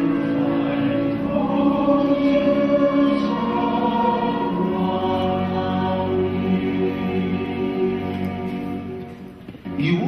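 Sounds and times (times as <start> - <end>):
choir singing long held notes: 0.0 - 9.2
musical accompaniment: 0.0 - 10.0.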